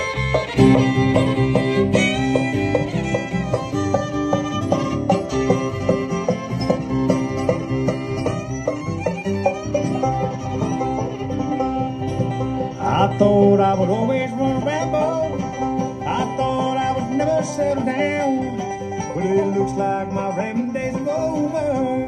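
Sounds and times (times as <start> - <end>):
acoustic guitar: 0.0 - 22.0
banjo: 0.0 - 22.0
electric bass: 0.0 - 22.0.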